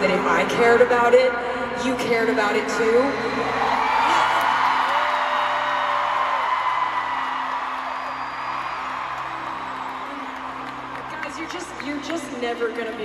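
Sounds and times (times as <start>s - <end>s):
stadium crowd cheering: 3.5s - 13.0s.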